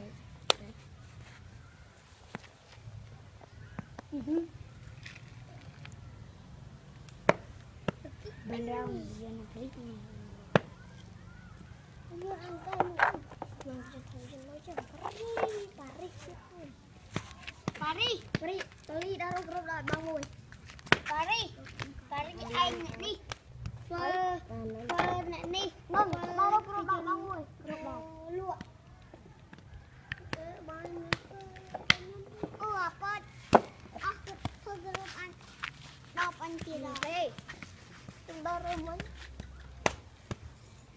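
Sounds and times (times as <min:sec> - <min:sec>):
low steady background noise: 0:00.0 - 0:40.9.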